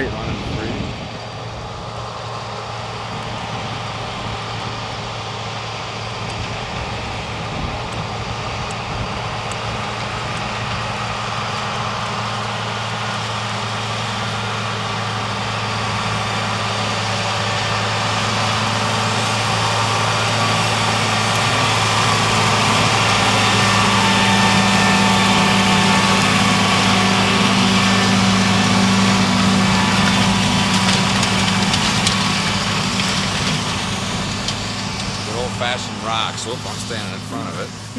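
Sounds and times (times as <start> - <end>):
tractor diesel engine running: 0.0 - 37.9.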